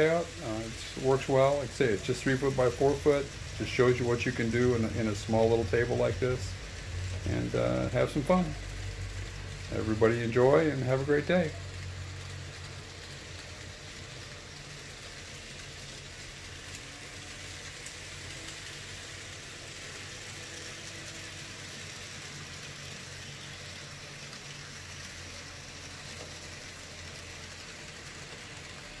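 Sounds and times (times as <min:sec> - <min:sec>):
model train motors humming: 0:00.0 - 0:29.0.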